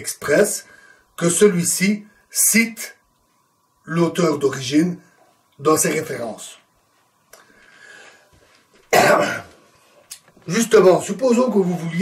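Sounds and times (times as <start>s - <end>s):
man coughing: 8.9s - 9.5s.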